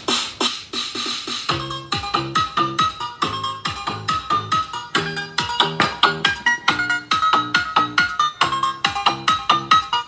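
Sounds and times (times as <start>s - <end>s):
electronic music through loudspeaker: 0.0s - 10.0s.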